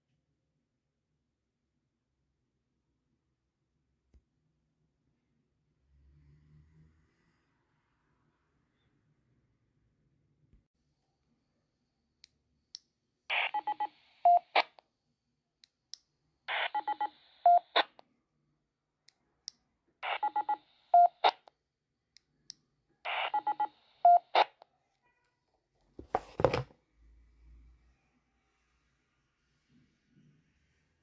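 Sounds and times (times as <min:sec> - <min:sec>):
radio short beeps: 0:23.1 - 0:24.6.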